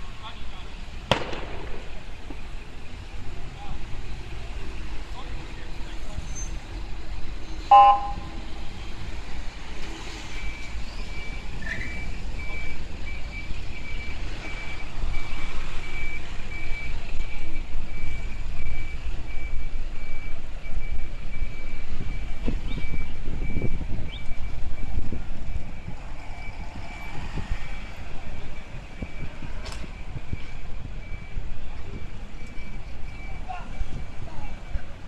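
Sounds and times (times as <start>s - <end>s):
cars driving past: 1.0s - 35.0s
high electronic beep: 7.7s - 8.4s.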